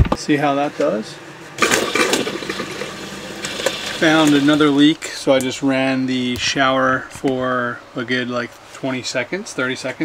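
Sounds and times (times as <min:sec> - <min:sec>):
water pump humming: 0:00.0 - 0:10.0
water rushing through pipes: 0:01.6 - 0:05.0.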